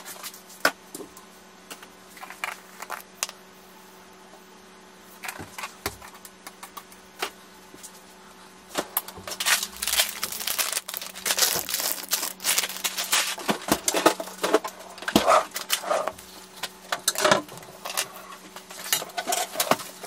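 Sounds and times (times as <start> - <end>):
plastic packets crinkling: 9.1 - 14.5.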